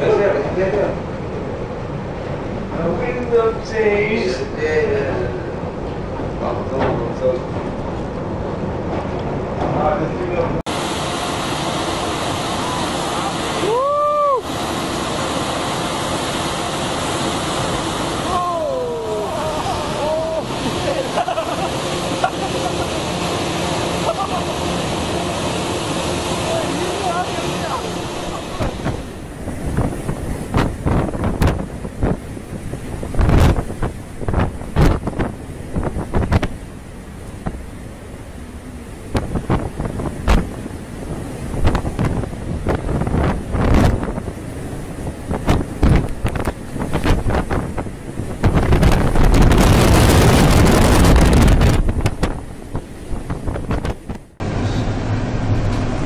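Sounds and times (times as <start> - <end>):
waves crashing on ship deck: 0.0 - 56.0
wind buffeting microphone: 18.9 - 56.0.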